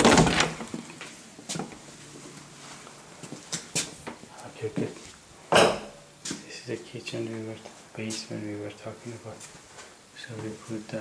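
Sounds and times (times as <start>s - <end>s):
door opening: 0.0s - 1.7s.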